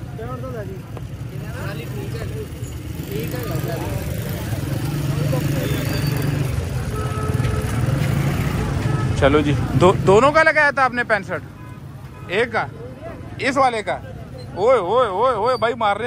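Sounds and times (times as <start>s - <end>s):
crowd talking: 0.0s - 16.0s
low rumble of motor traffic: 0.0s - 16.0s.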